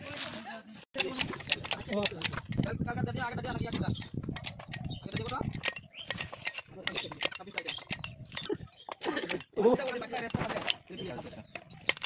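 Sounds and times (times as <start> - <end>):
grease pump clicking: 1.0 - 2.7, 3.6 - 10.9.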